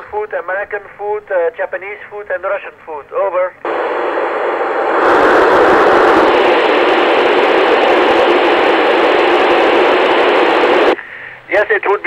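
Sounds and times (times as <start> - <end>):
radio static hiss: 3.6 - 12.0.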